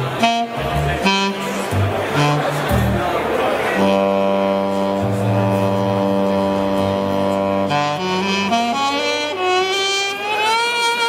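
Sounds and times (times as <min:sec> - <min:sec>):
synthesizer notes: 0:00.0 - 0:11.0.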